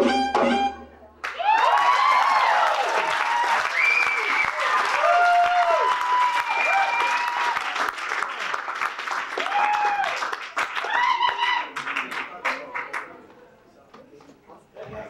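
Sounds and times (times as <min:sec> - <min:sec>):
audience applauding: 0:01.2 - 0:13.2
cheers and whoops: 0:01.3 - 0:07.9, 0:09.4 - 0:11.8.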